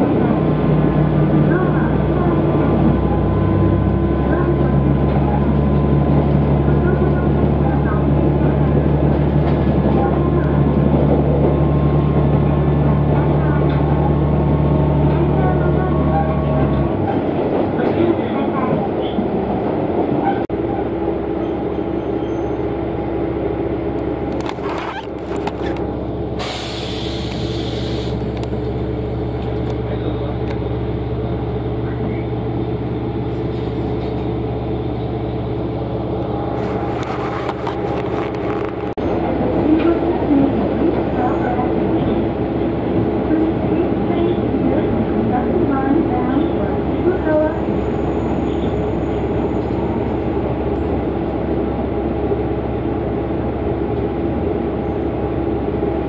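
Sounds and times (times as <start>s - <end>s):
diesel railcar engine hum: 0.0s - 56.0s
train running noise: 0.0s - 56.0s.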